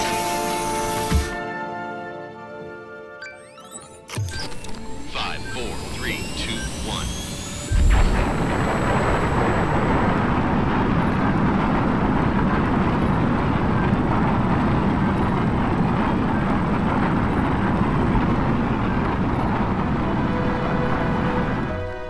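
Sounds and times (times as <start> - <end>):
rocket thrust rushing: 7.2 - 11.7.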